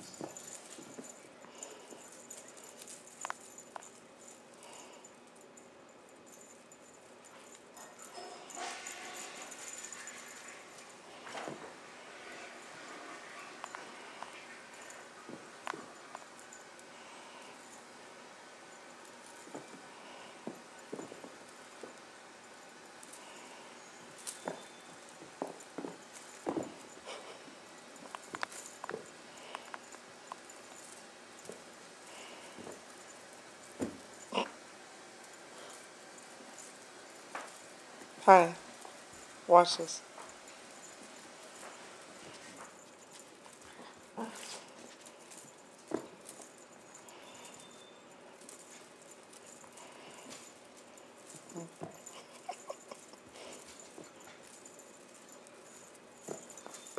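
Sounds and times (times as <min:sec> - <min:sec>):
soft rustling: 0:00.0 - 0:56.9.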